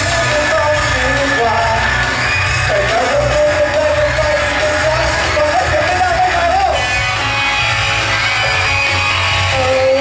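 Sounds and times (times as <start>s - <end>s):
man singing: 0.0s - 6.8s, 9.4s - 10.0s
crowd yelling: 0.0s - 10.0s
live pop-rock band: 0.0s - 10.0s.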